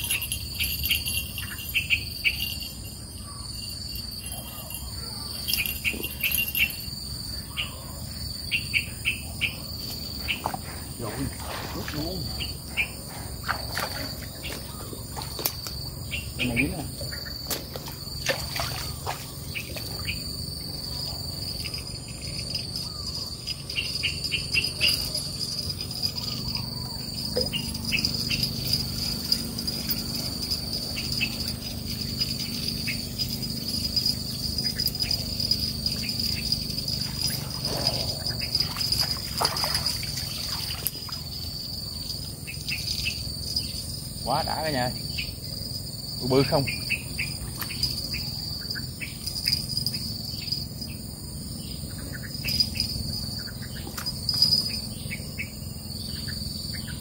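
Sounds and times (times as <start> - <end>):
insects chirring: 0.0 - 57.0.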